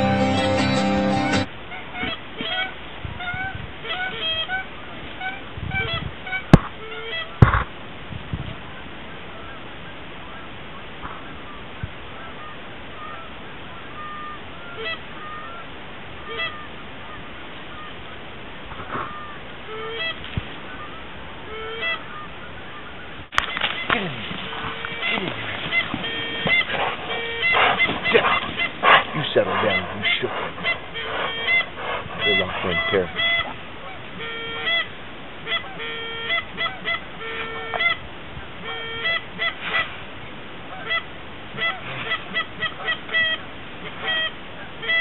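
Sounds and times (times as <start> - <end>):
geese honking: 0.0 - 7.7, 8.7 - 45.0.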